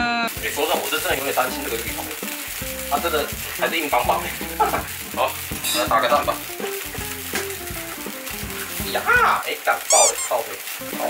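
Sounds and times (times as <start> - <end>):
broth boiling and sizzling: 0.2 - 11.0.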